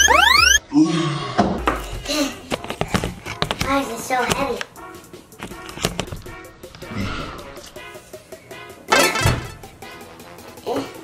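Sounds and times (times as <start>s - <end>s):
cartoon boing whistle: 0.0s - 0.6s.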